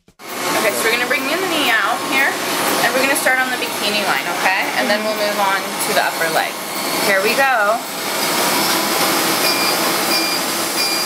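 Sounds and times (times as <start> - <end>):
steady rush of air: 0.2 - 10.7
short high beeps: 9.4 - 11.0.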